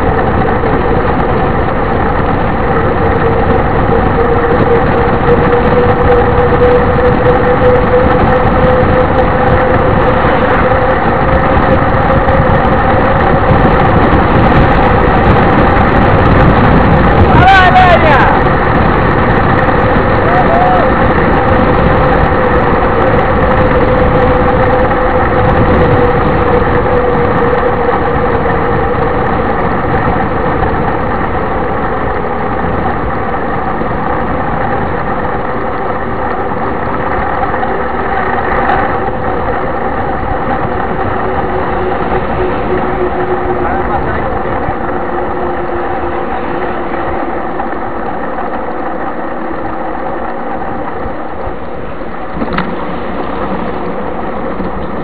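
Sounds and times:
bike tyres rolling on asphalt: 0:00.0 - 0:55.0.

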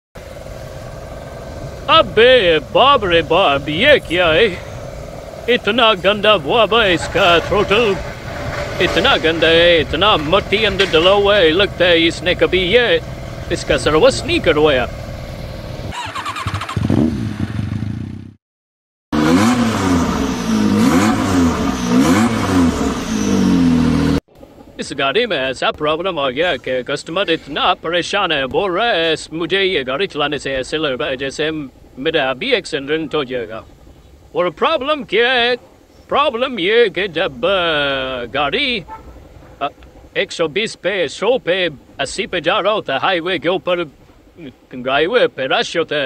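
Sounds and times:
car engine idling: 0:00.2 - 0:16.4, 0:19.4 - 0:24.8, 0:28.4 - 0:40.2, 0:41.5 - 0:44.8
man's voice: 0:01.9 - 0:04.7, 0:05.5 - 0:08.0, 0:08.8 - 0:14.9, 0:34.4 - 0:38.9, 0:39.6 - 0:46.0.

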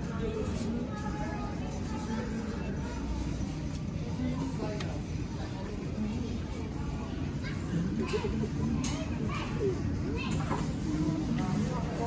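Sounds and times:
background chatter: 0:00.0 - 0:12.0
children's voices: 0:07.3 - 0:10.9.

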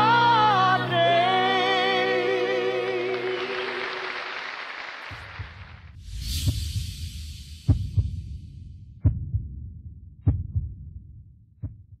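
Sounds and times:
heartbeat double thumps: 0:05.4 - 0:12.0.

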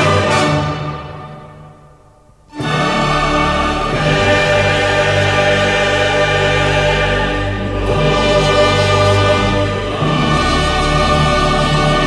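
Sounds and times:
choir singing held chords: 0:00.0 - 0:01.8, 0:02.5 - 0:12.0
orchestral accompaniment: 0:00.0 - 0:01.8, 0:02.5 - 0:12.0.

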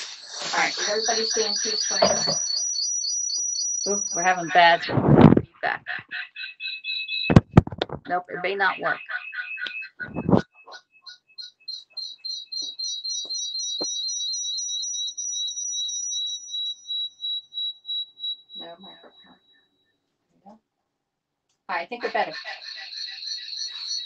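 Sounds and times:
garbled echoed voice: 0:00.0 - 0:02.3, 0:03.9 - 0:06.2, 0:07.9 - 0:09.1, 0:21.7 - 0:23.0
high-pitched electronic chirps: 0:00.0 - 0:04.9, 0:05.9 - 0:19.6, 0:21.7 - 0:24.0.

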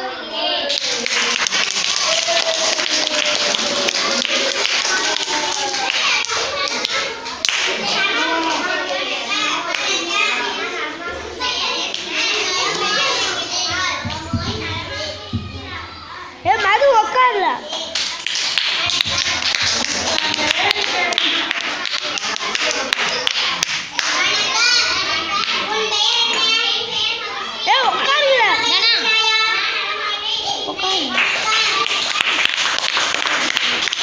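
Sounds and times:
children calling out: 0:00.0 - 0:32.6
children talking: 0:00.0 - 0:34.0.

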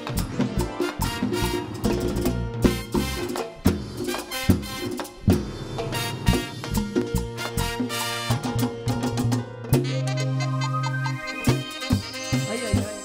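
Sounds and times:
brass section: 0:00.0 - 0:13.0
conga drums: 0:00.0 - 0:13.0
keyboards: 0:00.0 - 0:13.0
latin dance band playing: 0:00.0 - 0:13.0.

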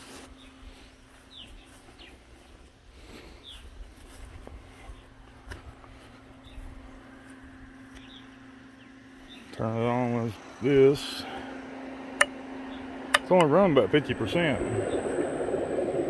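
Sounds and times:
small birds chirping: 0:00.0 - 0:11.6, 0:12.2 - 0:15.8
faint steady hum: 0:00.0 - 0:16.0
low rumble: 0:11.2 - 0:16.0.

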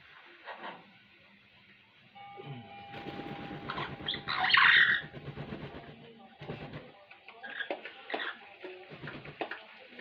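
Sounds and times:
wings flapping: 0:02.9 - 0:07.0, 0:08.8 - 0:09.6
parrot squawk: 0:03.7 - 0:05.1.

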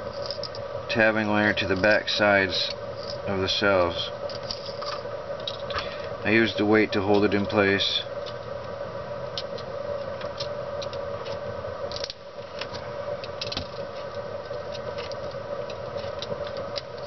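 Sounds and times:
steady background hum: 0:00.0 - 0:17.0
small metal clicks and scratches: 0:00.1 - 0:00.6, 0:09.4 - 0:17.0.

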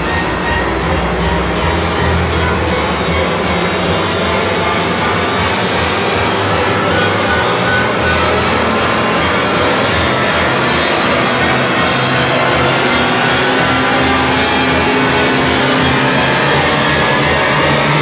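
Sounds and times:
orchestra and rock band playing: 0:00.0 - 0:18.0.

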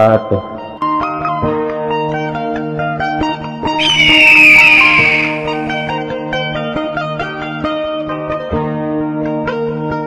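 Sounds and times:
whoosh with falling pitch: 0:03.8 - 0:05.9.

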